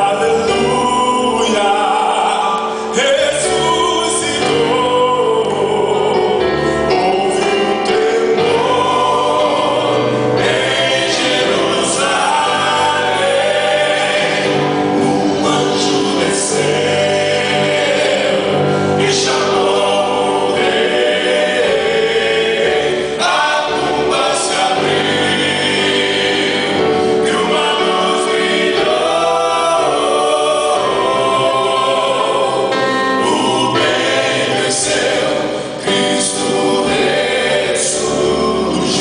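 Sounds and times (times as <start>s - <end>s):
electronic keyboard: 0.0s - 39.0s
men singing in harmony: 0.0s - 39.0s.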